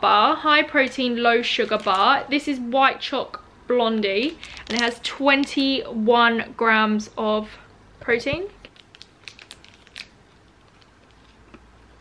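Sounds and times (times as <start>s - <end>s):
foil wrapper crackling: 1.6s - 2.2s, 4.3s - 5.0s, 8.6s - 11.2s.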